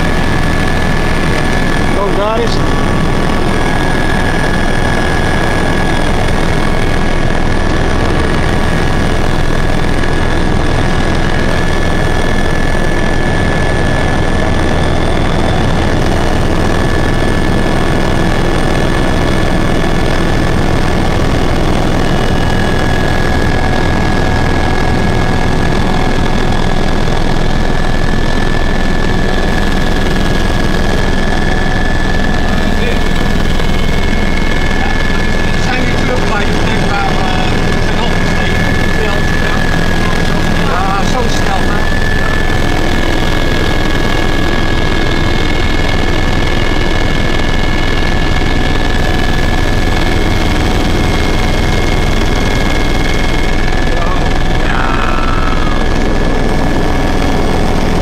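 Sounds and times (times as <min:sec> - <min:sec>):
helicopter engine and rotor: 0:00.0 - 0:58.0
high-pitched whine: 0:00.0 - 0:58.0.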